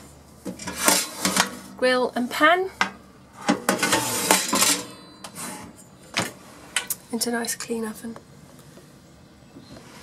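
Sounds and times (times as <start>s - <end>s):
metal grill pan clattering: 0.5s - 1.7s, 3.4s - 5.1s.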